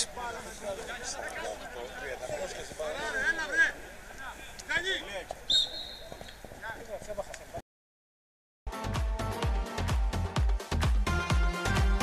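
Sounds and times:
faint shouting voices: 0.0 - 6.9.

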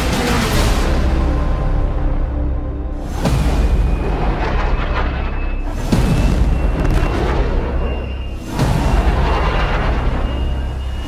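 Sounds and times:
dramatic music: 0.0 - 11.0
deep booming hits: 3.0 - 10.4.

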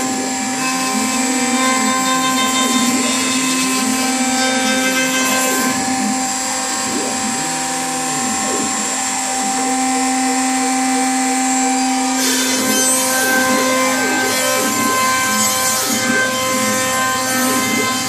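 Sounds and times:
router spindle whining: 0.0 - 18.0.

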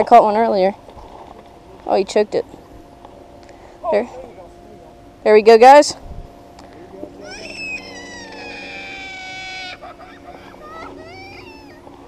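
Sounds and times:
young child crying: 7.2 - 12.0.

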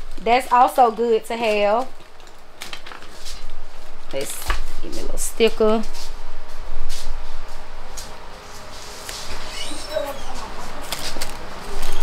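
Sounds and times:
plastic packaging rustling: 0.4 - 4.8.

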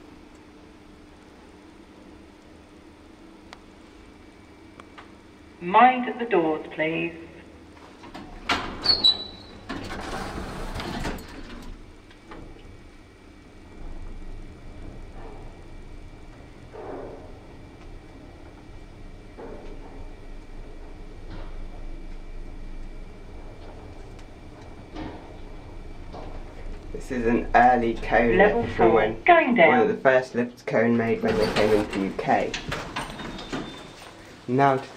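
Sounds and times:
lift motor low hum: 7.4 - 29.8
lift doors sliding shut: 8.0 - 11.8, 13.7 - 29.2, 31.1 - 34.5.

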